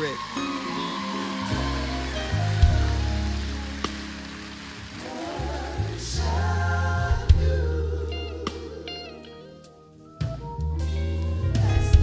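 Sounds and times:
church band playing slow chords: 0:00.0 - 0:12.0.

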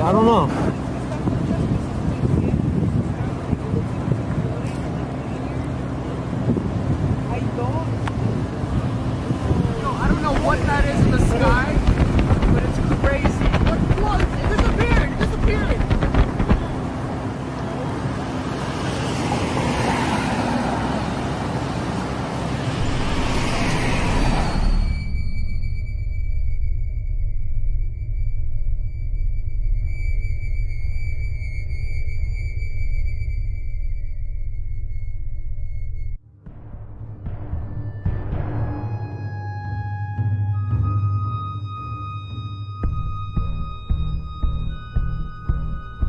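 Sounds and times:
low electronic drone: 0:00.0 - 0:19.6, 0:20.8 - 0:46.0
wind buffeting microphone: 0:00.0 - 0:26.6
car road noise: 0:00.0 - 0:39.6, 0:42.8 - 0:46.0
held high tones: 0:22.7 - 0:36.0.

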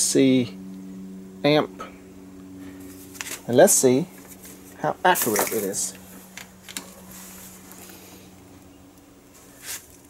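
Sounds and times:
solar inverter electrical hum: 0:00.0 - 0:10.0
short rustle: 0:09.3 - 0:10.0.

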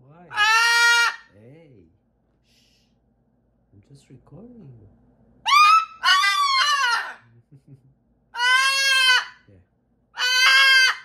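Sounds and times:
cockatoo squawking: 0:00.3 - 0:01.3, 0:05.4 - 0:07.3, 0:08.4 - 0:09.5, 0:10.2 - 0:11.0.

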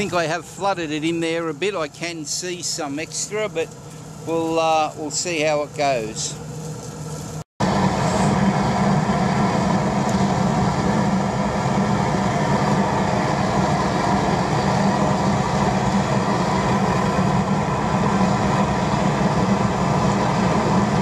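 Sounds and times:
oil burner rumbling: 0:00.0 - 0:21.0.

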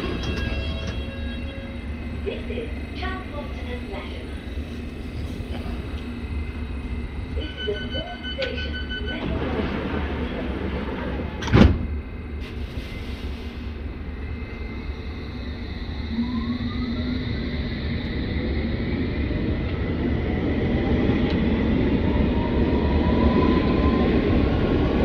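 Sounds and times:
train doors sliding shut: 0:00.0 - 0:01.5, 0:08.3 - 0:13.8
door-warning beeps: 0:07.4 - 0:09.4.

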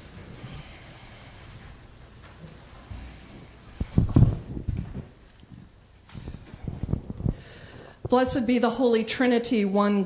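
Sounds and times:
microphone handling thumps: 0:03.8 - 0:08.4.

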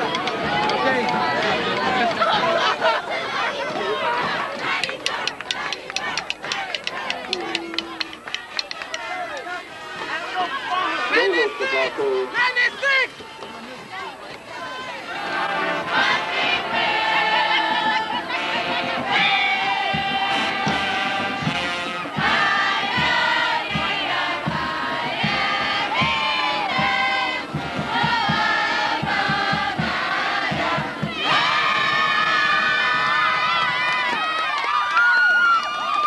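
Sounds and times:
crowd noise: 0:00.0 - 0:36.0.

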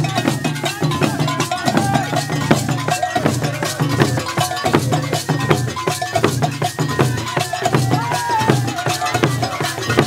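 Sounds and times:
bell and drum percussion: 0:00.0 - 0:10.0.

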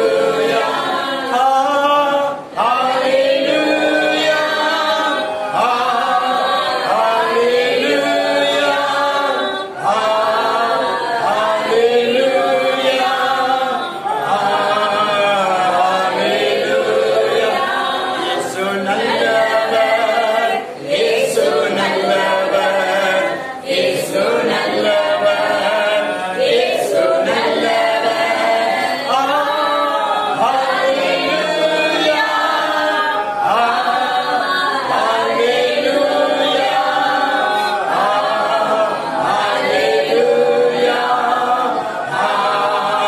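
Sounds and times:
man singing worship song unaccompanied: 0:00.0 - 0:43.0.

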